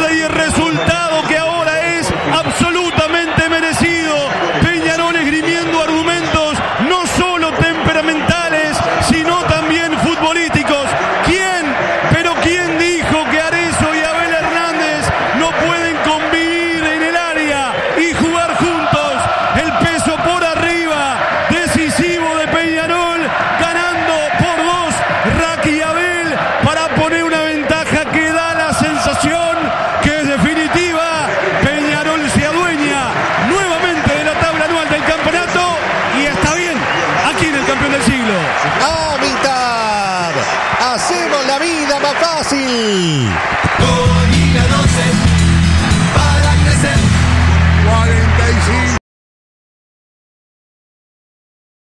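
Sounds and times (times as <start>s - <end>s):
man giving fast sports commentary: 0.0s - 47.2s, 47.8s - 49.0s.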